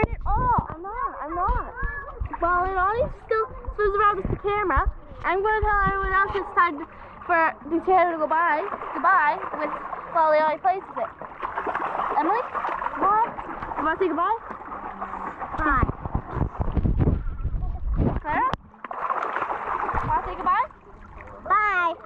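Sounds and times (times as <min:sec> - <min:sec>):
children chattering and calling out: 0:00.0 - 0:11.2
water splashing in a pool: 0:00.0 - 0:22.0.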